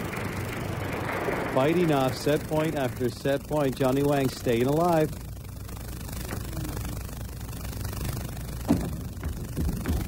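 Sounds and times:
low rumble of hall background: 0.0 - 10.0.

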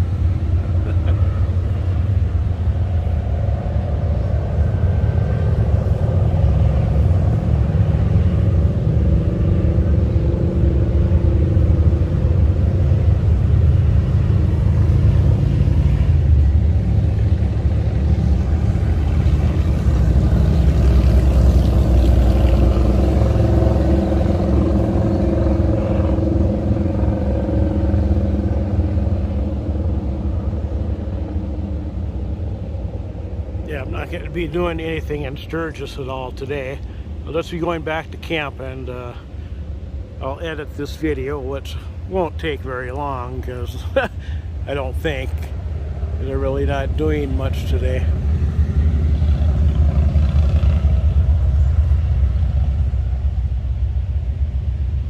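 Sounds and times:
motorcycles passing: 0.0 - 55.0.

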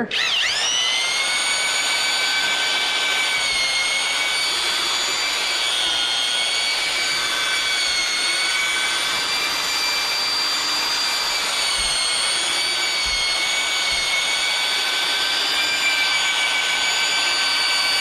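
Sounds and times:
drill mixer motor whine: 0.0 - 18.0.

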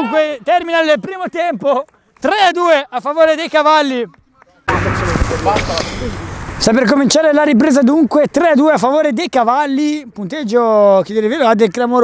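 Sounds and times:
outdoor noise rush: 2.9 - 11.6.

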